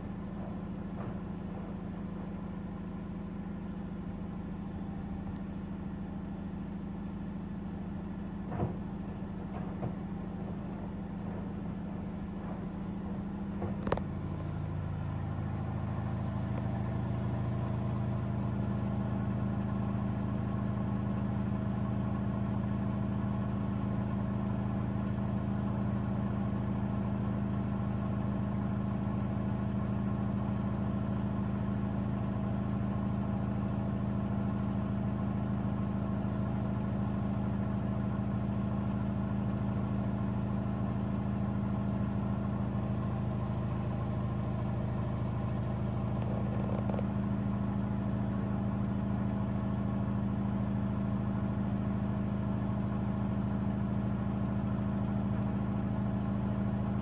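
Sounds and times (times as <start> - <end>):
washing machine spinning hum: 0.0 - 57.0.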